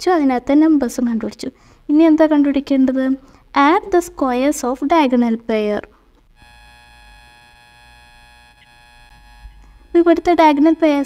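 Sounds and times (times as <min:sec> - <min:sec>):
faint buzzing tone: 0:06.3 - 0:11.0.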